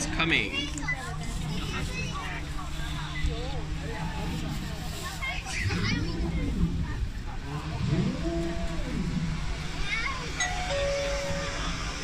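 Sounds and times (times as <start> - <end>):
electronic two-note chime: 10.4 - 11.8.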